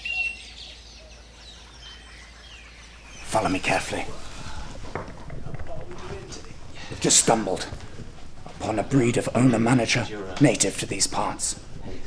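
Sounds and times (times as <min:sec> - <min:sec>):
light rustling: 0:03.2 - 0:09.0
soft quick footsteps: 0:03.2 - 0:12.0.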